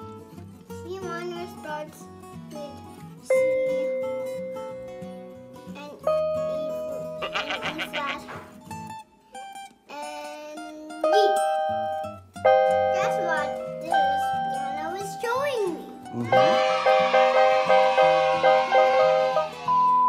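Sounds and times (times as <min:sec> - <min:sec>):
low keyboard accompaniment pattern: 0:03.3 - 0:08.6, 0:11.0 - 0:20.0
electronic keyboard chords: 0:11.0 - 0:20.0.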